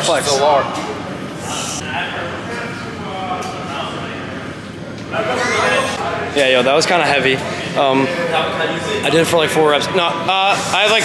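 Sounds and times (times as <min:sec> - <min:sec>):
steady room hum: 0:00.0 - 0:11.0.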